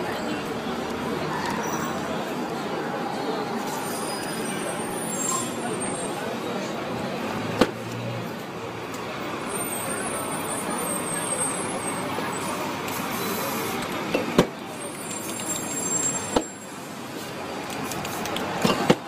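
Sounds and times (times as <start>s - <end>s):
busy street traffic: 0.0s - 19.0s.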